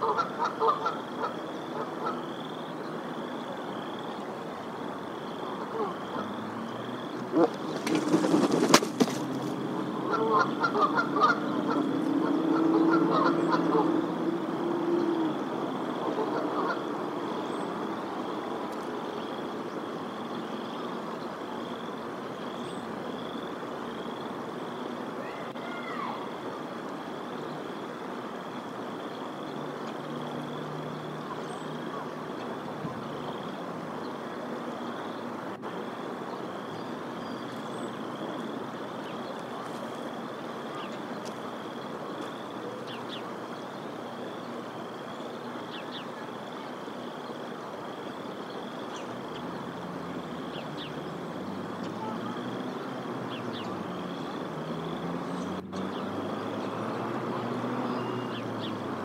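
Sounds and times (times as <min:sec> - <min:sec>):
goose honking: 0:00.0 - 0:02.2, 0:10.0 - 0:13.9.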